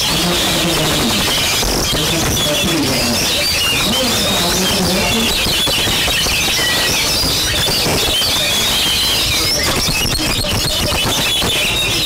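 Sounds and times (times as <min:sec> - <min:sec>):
loud background din: 0:00.0 - 0:12.0
other birds: 0:00.0 - 0:12.0
bird singing quick high whistles: 0:01.0 - 0:12.0.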